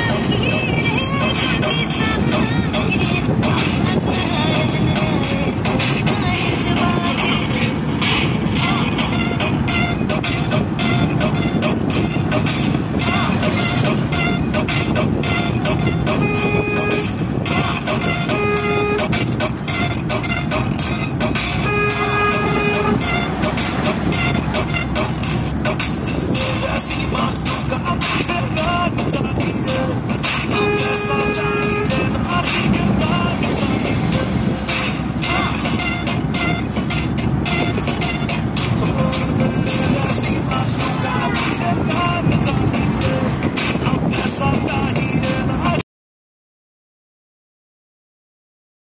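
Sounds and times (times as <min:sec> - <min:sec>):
road and wind noise in vehicle: 0:00.0 - 0:45.8
vehicle horn honking: 0:13.2 - 0:25.1, 0:30.5 - 0:32.4, 0:35.3 - 0:36.7.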